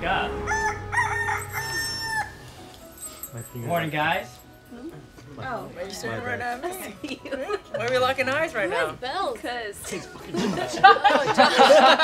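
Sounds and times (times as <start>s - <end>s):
rooster crowing: 0.4s - 2.6s.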